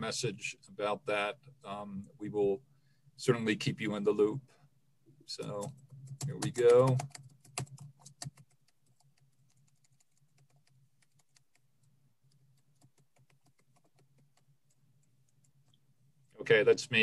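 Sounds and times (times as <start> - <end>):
typing on computer keyboard: 5.4 - 15.5.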